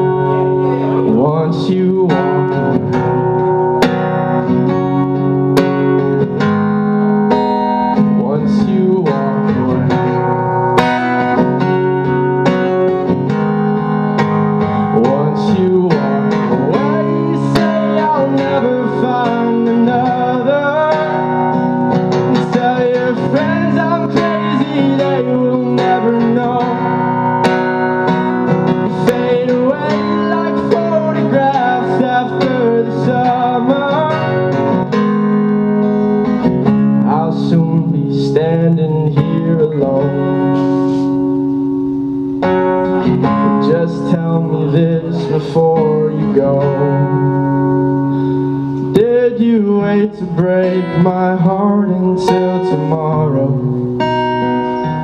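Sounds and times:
man singing: 0.0 - 3.3, 7.8 - 10.2, 14.6 - 27.6, 28.4 - 35.2, 36.8 - 41.4, 43.2 - 47.9, 48.5 - 55.0
acoustic guitar strumming: 0.0 - 55.0.

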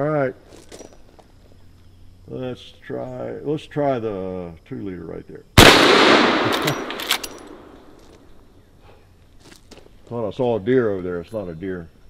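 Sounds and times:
rifle shot echo: 5.6 - 8.0
rifle lever metallic clicks: 5.6 - 8.1.

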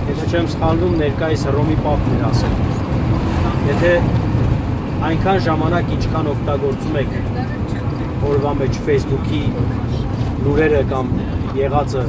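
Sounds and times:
people talking: 0.0 - 2.8, 3.4 - 4.1, 5.0 - 12.0
vehicle engine and road rumble: 0.0 - 12.0.

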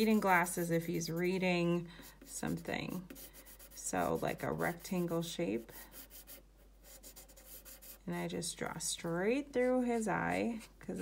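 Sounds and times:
pencil scratching on paper: 0.0 - 8.1.

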